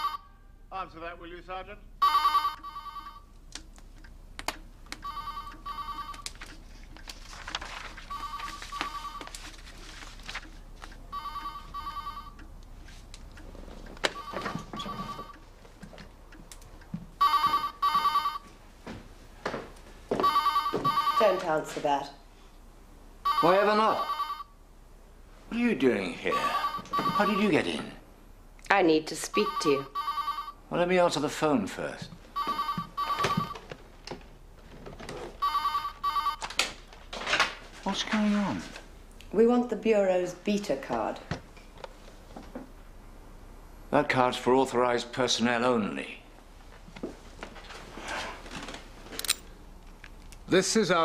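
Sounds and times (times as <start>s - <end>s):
telephone ringing: 0.0s - 0.4s, 2.0s - 3.3s, 5.0s - 6.3s, 8.0s - 9.4s, 11.0s - 12.4s, 14.1s - 15.4s, 17.2s - 18.5s, 20.1s - 21.8s, 23.2s - 24.6s, 26.3s - 27.9s, 29.2s - 30.6s, 32.4s - 33.7s, 35.4s - 36.6s.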